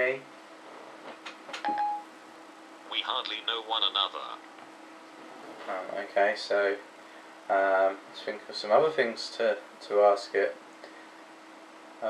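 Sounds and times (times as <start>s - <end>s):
short phone beep: 1.7s - 2.0s.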